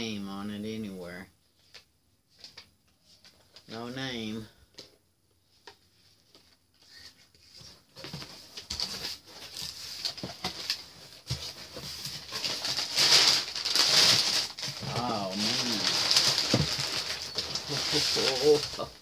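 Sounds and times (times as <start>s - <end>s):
paper and cardboard rustling: 5.8s - 19.0s.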